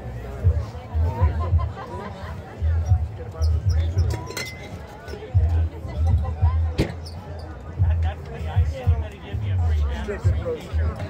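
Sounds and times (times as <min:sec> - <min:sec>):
music: 0:00.0 - 0:11.0
people talking: 0:00.0 - 0:11.0.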